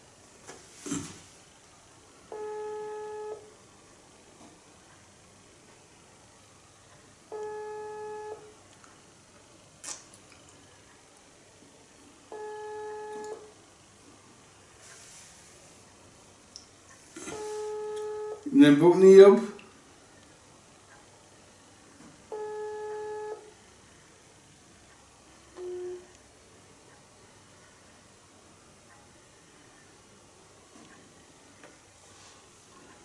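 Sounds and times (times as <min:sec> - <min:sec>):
phone ringback tone: 0:02.3 - 0:03.5, 0:07.3 - 0:08.5, 0:12.3 - 0:13.5, 0:17.3 - 0:18.5, 0:22.3 - 0:23.5, 0:25.6 - 0:26.1.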